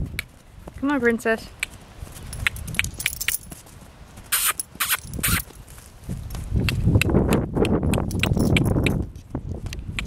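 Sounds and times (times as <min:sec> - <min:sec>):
horse hooves trotting on dirt: 0:00.0 - 0:10.0.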